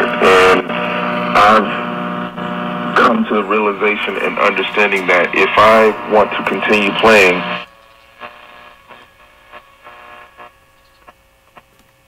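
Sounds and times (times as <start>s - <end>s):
radio crackles: 0.0s - 12.0s
radio hum and hiss: 0.0s - 12.0s.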